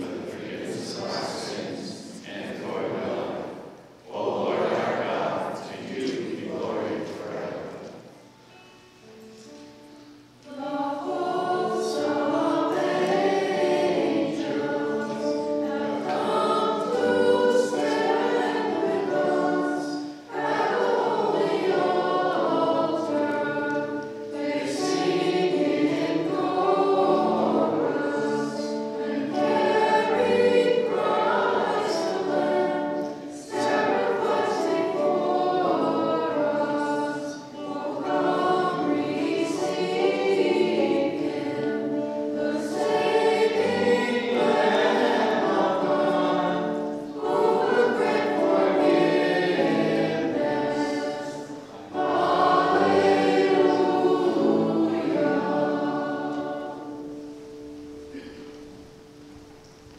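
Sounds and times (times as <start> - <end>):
choir singing a hymn: 0.0 - 59.4
choir breaths: 8.0 - 59.1.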